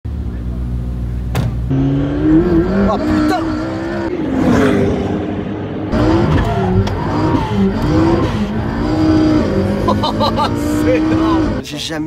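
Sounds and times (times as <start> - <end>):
car engine revving in cabin: 1.6 - 11.7.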